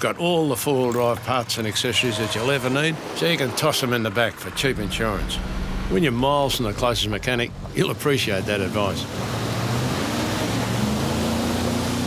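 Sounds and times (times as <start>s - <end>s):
vehicle engine running: 4.4s - 12.0s.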